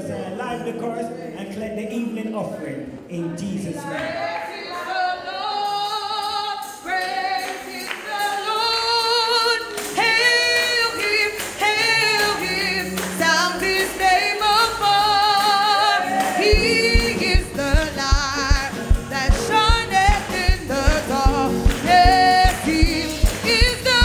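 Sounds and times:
woman singing slow gospel melody: 0:04.0 - 0:24.0
drum beats: 0:16.2 - 0:24.0.

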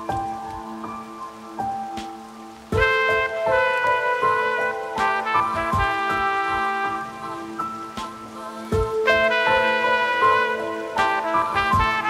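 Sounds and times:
slow melody of held notes: 0:00.0 - 0:12.0.

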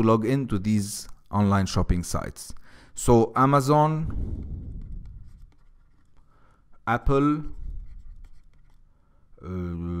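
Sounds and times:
low rumble: 0:04.0 - 0:05.4
stylus scratching on pen tablet: 0:04.2 - 0:08.9.

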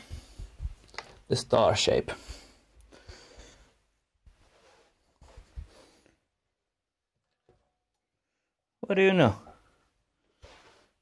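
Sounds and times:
soft rustling: 0:00.0 - 0:06.3, 0:09.6 - 0:11.0.

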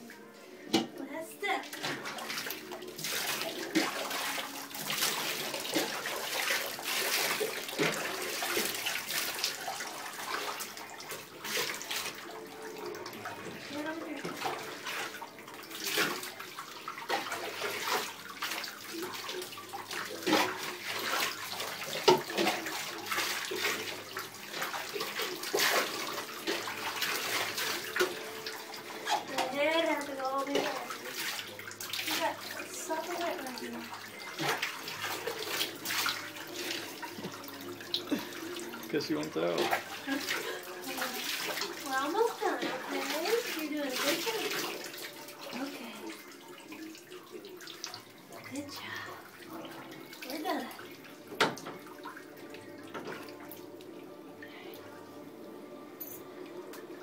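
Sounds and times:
water splashing in a bathtub: 0:00.0 - 0:57.0.

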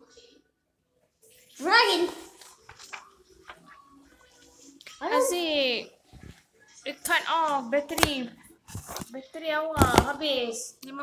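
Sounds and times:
paper sheets rustling: 0:02.1 - 0:03.7, 0:07.9 - 0:09.2.

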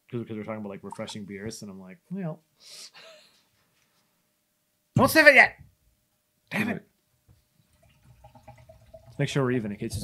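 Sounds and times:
beer trickling into glass: 0:07.8 - 0:09.6.

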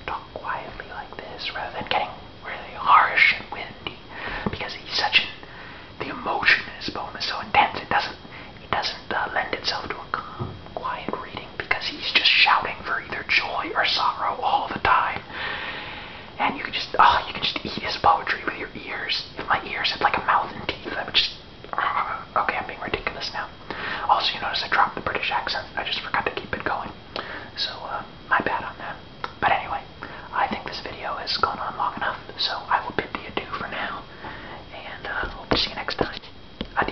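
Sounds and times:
man whispering: 0:00.0 - 0:03.9, 0:04.5 - 0:05.4, 0:06.0 - 0:15.3, 0:16.4 - 0:26.9, 0:27.5 - 0:34.1, 0:34.7 - 0:36.9.

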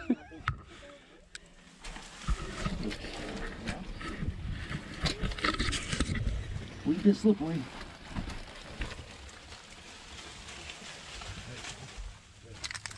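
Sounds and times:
scraping and rustling on grass: 0:01.8 - 0:12.6.

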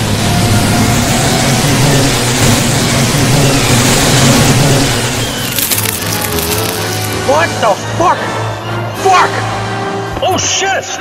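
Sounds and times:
low droning music: 0:00.0 - 0:10.9
crackle of clicks: 0:05.4 - 0:07.2.

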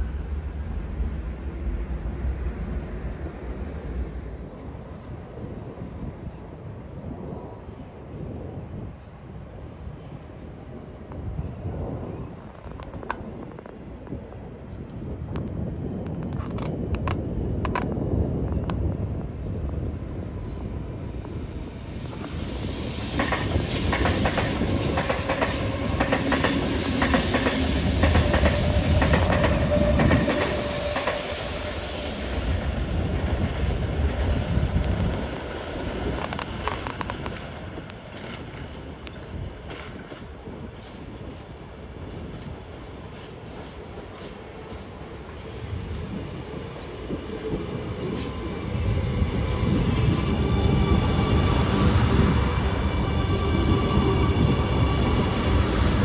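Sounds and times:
train rumbling with wheel clicks: 0:12.2 - 0:56.0
metro train wheels clicking over points: 0:18.7 - 0:39.1, 0:42.4 - 0:56.0.

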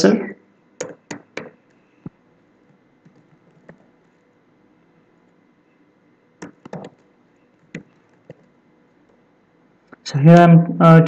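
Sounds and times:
keyboard keystroke clicks: 0:06.4 - 0:07.0.

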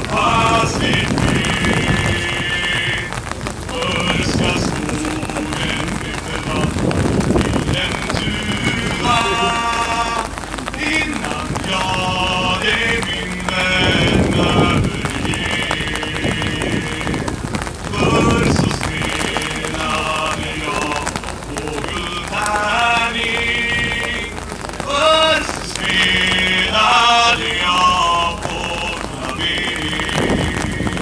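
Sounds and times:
men chanting: 0:00.0 - 0:31.0
steady rain hiss: 0:00.0 - 0:31.0.

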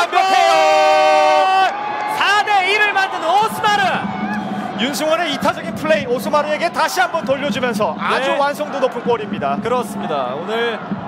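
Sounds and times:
excited fast commentary: 0:01.4 - 0:11.0.

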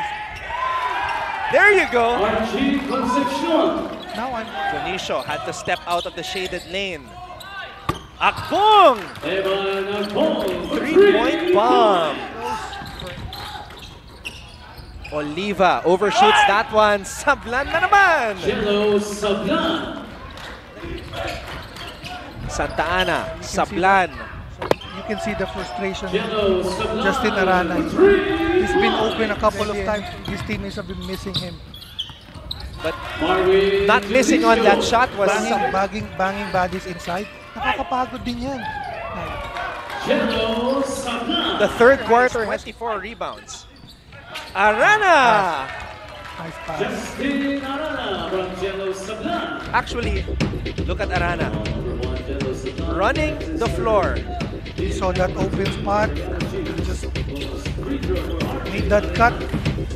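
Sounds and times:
commentator shouting: 0:01.5 - 0:05.1, 0:10.5 - 0:12.7, 0:15.9 - 0:20.0, 0:25.0 - 0:30.4, 0:33.2 - 0:36.0
sneakers squeaking on floor: 0:02.3 - 0:16.5, 0:19.6 - 0:44.9, 0:57.2 - 0:59.9
basketball bouncing: 0:24.6 - 0:24.9.

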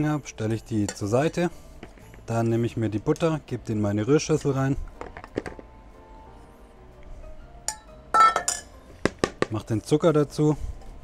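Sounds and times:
steel bowl clinking on stone: 0:07.7 - 0:08.7.

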